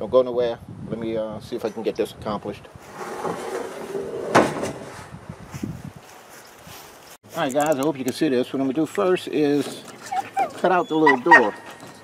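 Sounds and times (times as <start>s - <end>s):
metal roofing sheet handling: 2.8s - 5.1s.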